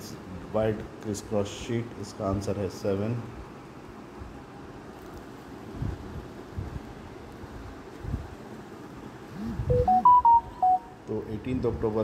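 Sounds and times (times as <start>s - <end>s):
electronic beeping jingle: 9.7s - 11.0s.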